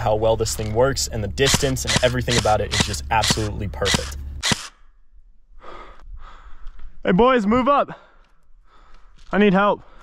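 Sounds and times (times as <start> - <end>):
sharp click: 1.4 - 4.8
breathy exhale: 5.6 - 6.6.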